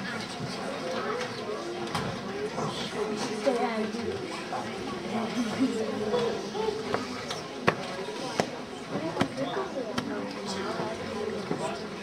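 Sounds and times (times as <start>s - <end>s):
low audience chatter: 0.0s - 12.0s.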